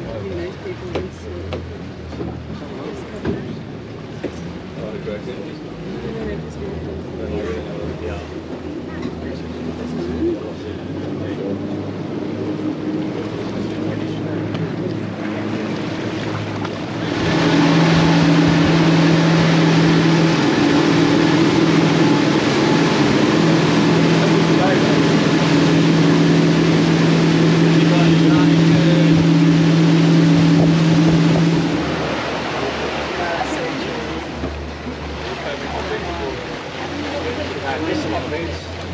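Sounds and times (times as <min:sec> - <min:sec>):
rushing water: 0:00.0 - 0:38.9
speedboat engines droning: 0:00.0 - 0:38.9
wind: 0:00.0 - 0:38.9.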